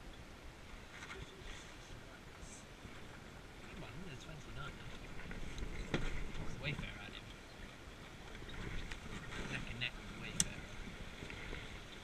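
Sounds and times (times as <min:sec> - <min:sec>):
water moving against hull: 0:00.5 - 0:12.0
wind on microphone: 0:04.5 - 0:12.0.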